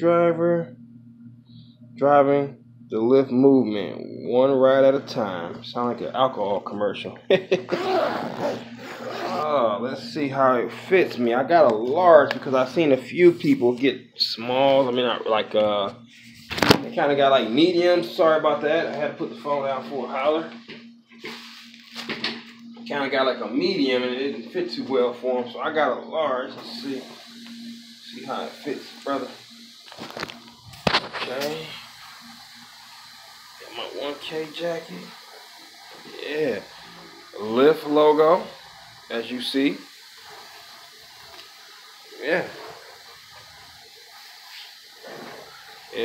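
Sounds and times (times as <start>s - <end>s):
low electrical hum: 0.0s - 46.0s
faint steady hiss: 1.6s - 46.0s.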